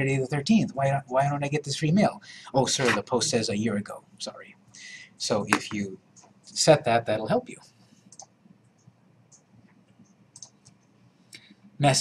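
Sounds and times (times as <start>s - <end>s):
faint computer mouse clicks: 8.1s - 11.6s.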